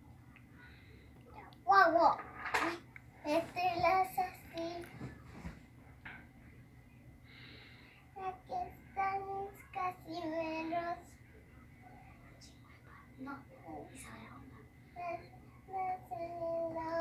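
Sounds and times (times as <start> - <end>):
girl singing: 3.2 - 5.1, 8.2 - 11.2, 13.2 - 17.0.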